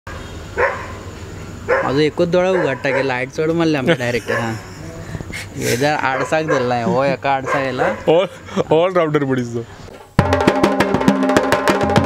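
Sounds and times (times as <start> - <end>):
steady background noise: 0.1 - 10.2
dog barking: 0.6 - 1.0, 1.7 - 3.3, 4.2 - 4.7, 6.0 - 8.2.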